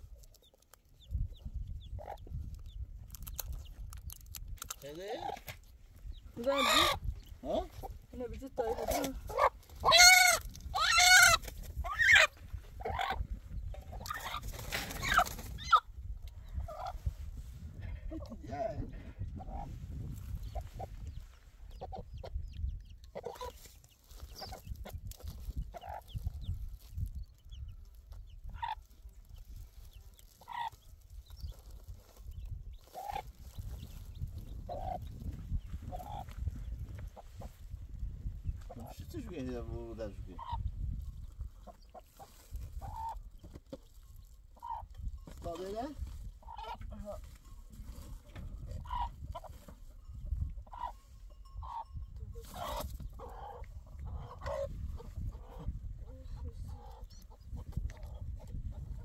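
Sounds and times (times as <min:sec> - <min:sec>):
chicks peeping: 0:00.0 - 0:17.1, 0:17.8 - 0:47.3, 0:48.0 - 0:59.0
hen clucking: 0:00.1 - 0:02.8, 0:04.8 - 0:17.1, 0:17.8 - 0:26.6, 0:27.4 - 0:28.9, 0:30.2 - 0:30.9, 0:32.8 - 0:37.8, 0:38.5 - 0:59.0.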